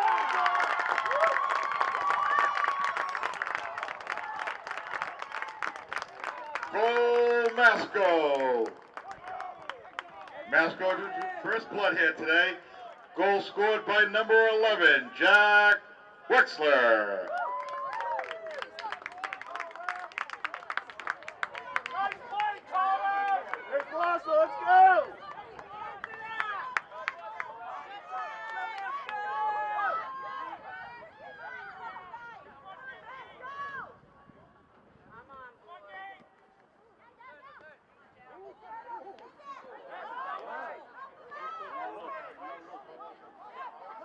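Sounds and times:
people clapping: 0.0s - 11.6s, 17.2s - 29.4s
people calling out and chattering: 21.7s - 44.0s.

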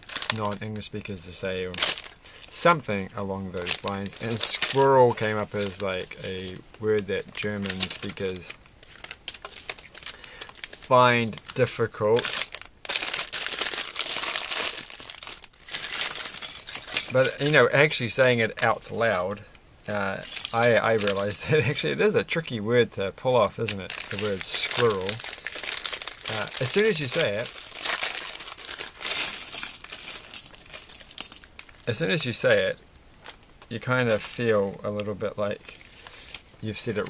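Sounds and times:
plastic pieces shifting: 0.0s - 0.9s, 1.6s - 2.8s, 3.5s - 22.4s, 23.2s - 32.4s
plastic bag crinkling: 0.0s - 37.0s.

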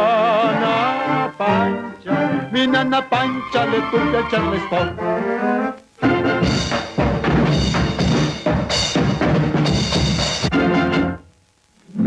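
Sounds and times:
drum and percussion hits: 6.0s - 11.1s
dance band playing: 6.0s - 11.2s.

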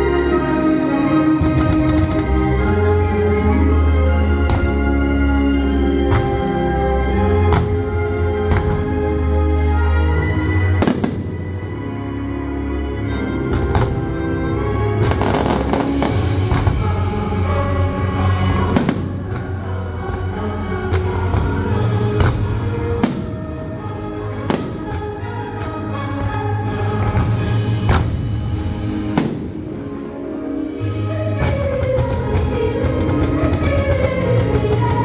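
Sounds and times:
loud show music: 0.0s - 35.0s
fireworks bangs: 10.8s - 11.6s, 15.0s - 16.8s, 18.7s - 19.5s, 22.2s - 23.5s, 24.4s - 25.2s, 29.0s - 29.9s
firework bang: 29.2s - 29.6s.

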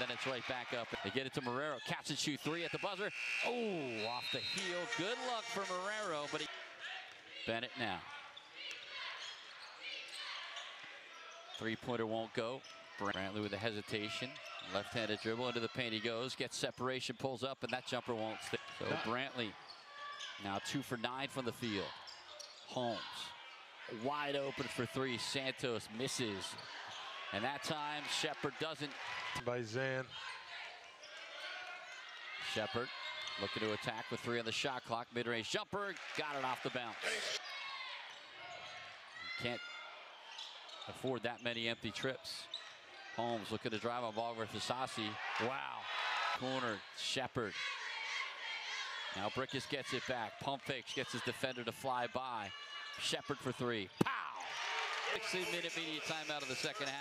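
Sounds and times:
arena crowd noise: 0.0s - 57.0s
crowd cheering: 2.4s - 7.0s, 26.5s - 29.5s, 35.9s - 38.1s, 45.0s - 46.8s, 52.3s - 57.0s
sneaker squeaks: 3.0s - 5.4s, 8.3s - 11.7s, 19.6s - 20.4s, 22.0s - 23.6s, 37.0s - 41.6s, 42.4s - 42.9s.

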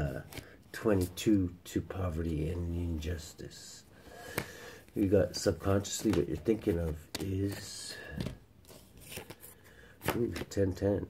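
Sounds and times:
cards clicking and sliding: 0.2s - 0.6s, 4.2s - 10.8s.

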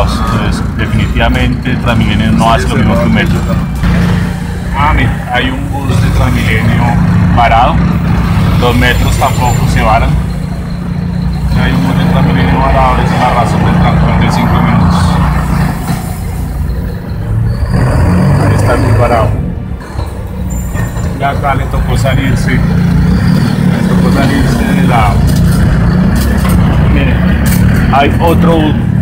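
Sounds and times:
bus engine and road rumble: 0.0s - 29.0s
passengers talking: 0.0s - 29.0s.

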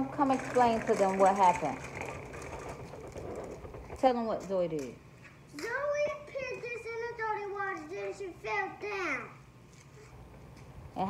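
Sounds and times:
faint outdoor rumble and hiss: 0.0s - 11.0s.

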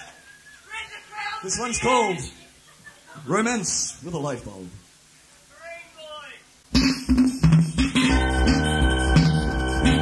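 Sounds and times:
drum machine beats: 6.7s - 10.0s
electric organ chords: 6.8s - 10.0s.

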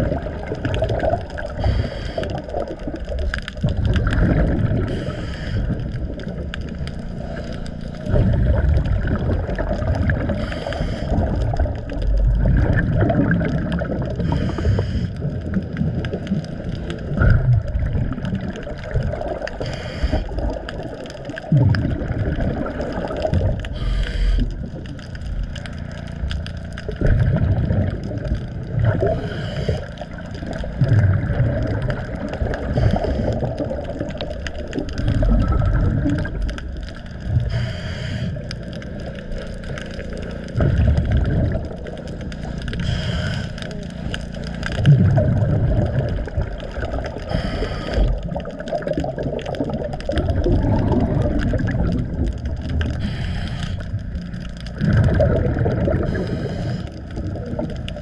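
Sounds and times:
exhaled bubbles rumbling: 0.0s - 58.0s
watery background: 0.0s - 58.0s
diver inhaling through regulator: 1.5s - 2.7s, 4.8s - 6.0s, 10.2s - 11.6s, 14.2s - 15.2s, 19.6s - 20.6s, 23.6s - 24.7s, 29.0s - 30.3s, 32.6s - 33.7s, 37.3s - 38.7s, 42.7s - 44.2s, 47.1s - 48.4s, 52.8s - 54.2s, 55.8s - 57.2s.

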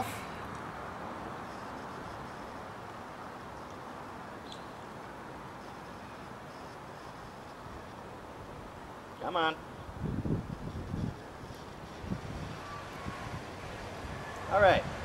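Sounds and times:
outdoor background hiss: 0.0s - 15.0s.

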